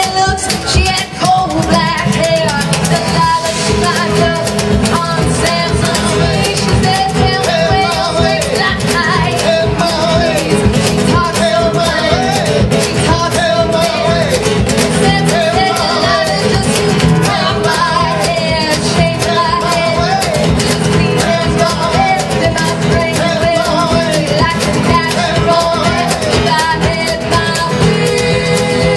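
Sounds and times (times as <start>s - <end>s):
acoustic and electric guitars: 0.0s - 28.9s
drum kit: 0.0s - 28.9s
upright double bass: 0.0s - 28.9s
woman singing: 0.0s - 28.9s.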